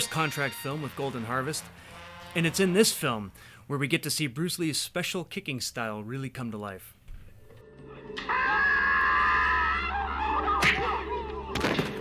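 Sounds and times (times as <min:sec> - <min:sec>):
low soundtrack hum: 0:00.0 - 0:03.7.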